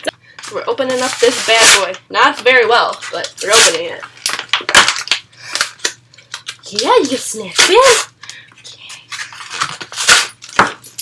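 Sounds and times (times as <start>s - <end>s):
packaging torn and crumpled: 3.4s - 6.6s.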